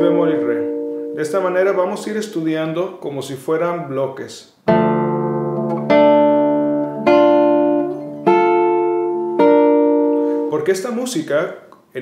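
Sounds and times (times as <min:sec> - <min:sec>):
classical guitar plucking chords: 0:00.0 - 0:01.8, 0:04.6 - 0:10.7.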